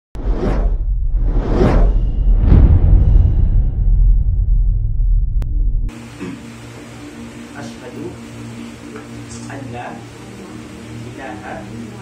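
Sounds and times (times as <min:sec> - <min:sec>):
deep bass rumble: 0:00.2 - 0:05.9.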